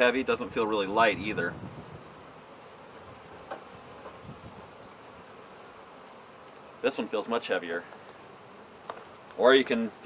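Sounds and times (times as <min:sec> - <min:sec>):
honey bees buzzing: 0:00.0 - 0:10.0.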